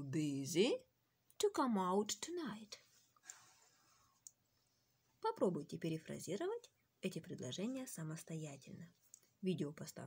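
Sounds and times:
soft breath: 2.8 - 5.2.

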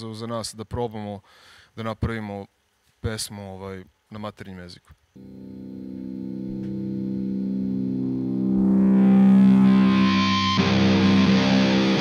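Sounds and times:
distorted electric guitar chords: 5.2 - 12.0.

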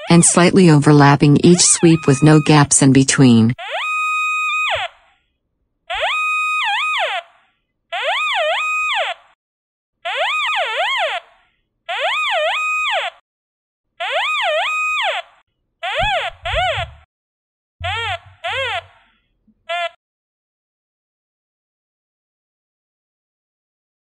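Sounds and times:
metal detector target tone: 0.2 - 3.5.

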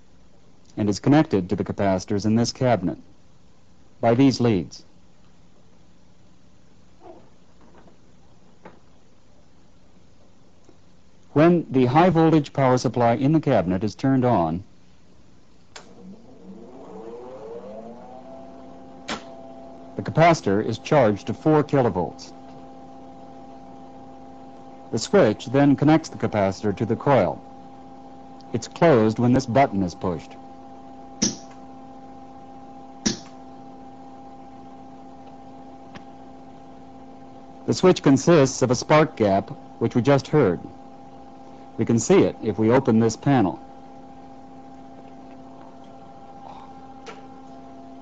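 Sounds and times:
power supply whine: 0.0 - 48.0
steady electrical hum: 0.0 - 48.0.

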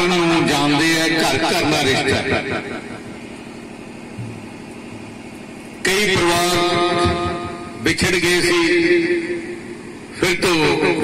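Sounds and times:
amplified speech: 0.0 - 2.8, 5.8 - 9.2, 10.2 - 11.0
low engine hum: 2.4 - 7.9.

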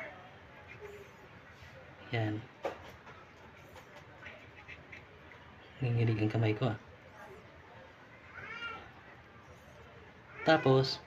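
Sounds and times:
cat meow: 8.2 - 9.0.

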